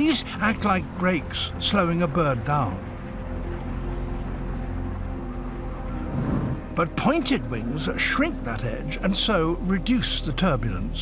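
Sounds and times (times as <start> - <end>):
wind-like air rush: 6.0 - 6.8.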